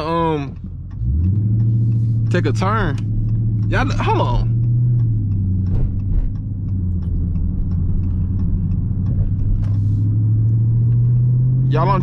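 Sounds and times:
car engine running at low revs: 0.0s - 12.0s.

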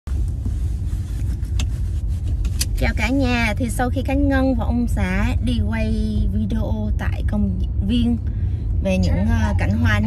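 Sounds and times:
car cabin road and engine rumble: 0.1s - 10.0s.

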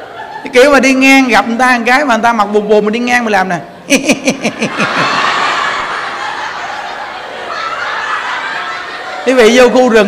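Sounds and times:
crowd laughing: 0.0s - 1.0s, 3.7s - 10.0s
man laughing into microphone: 3.8s - 9.6s.

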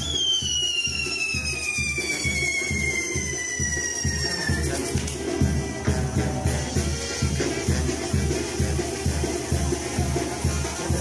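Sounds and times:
firework whistling falling in pitch: 0.0s - 5.1s
dance music with drum beat: 1.8s - 11.0s.

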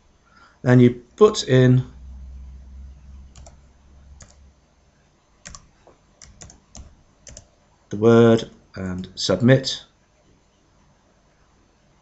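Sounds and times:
low hum: 1.4s - 5.1s
keyboard keys clicking: 3.3s - 3.6s, 4.2s - 4.4s, 5.4s - 7.5s.

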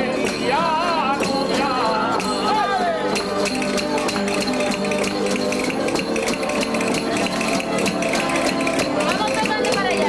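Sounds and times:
guitars and bandurrias playing: 0.0s - 10.0s.

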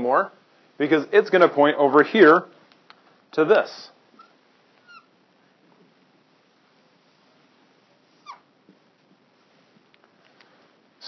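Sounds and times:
marker squeaking on whiteboard: 4.1s - 5.2s, 8.1s - 8.6s.

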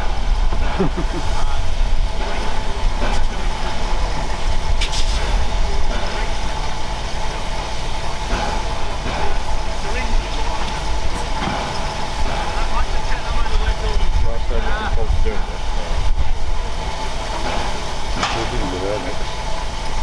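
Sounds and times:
steam locomotive hissing: 0.0s - 20.0s.

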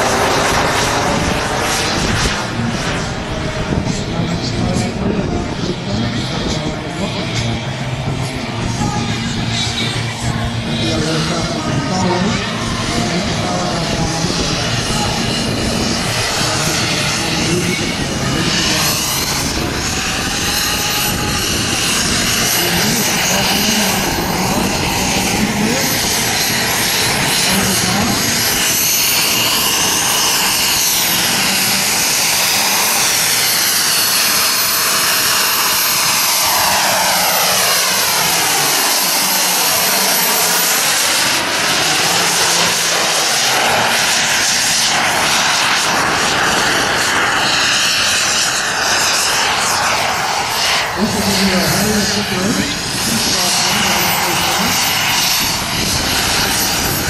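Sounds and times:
model jet turbine engine whine: 0.0s - 57.0s.

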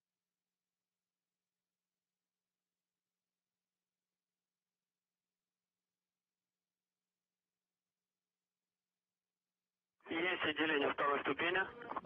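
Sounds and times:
voice over radio link: 10.1s - 12.0s.

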